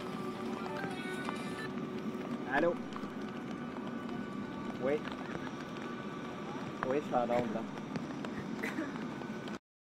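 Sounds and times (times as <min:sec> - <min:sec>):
steady background hum: 0:00.0 - 0:09.6.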